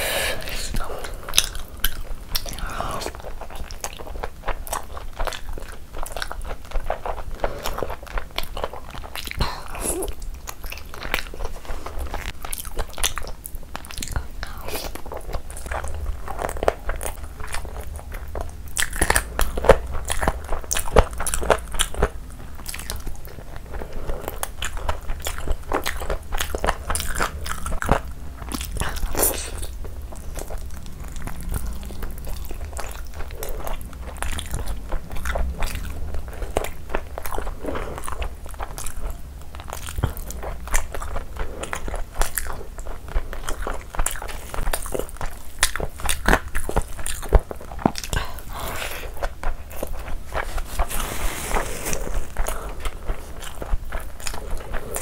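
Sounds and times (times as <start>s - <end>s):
chewing and biting food: 1.0s - 55.0s.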